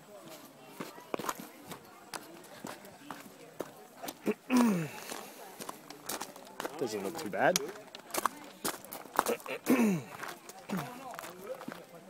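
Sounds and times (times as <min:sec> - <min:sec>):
people talking in background: 0:00.0 - 0:12.0
footsteps on dirt path: 0:00.1 - 0:12.0.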